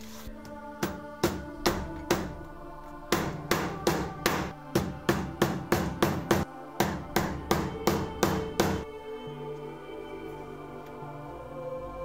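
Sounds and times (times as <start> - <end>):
hammer striking leather on wood: 3.1 - 8.9.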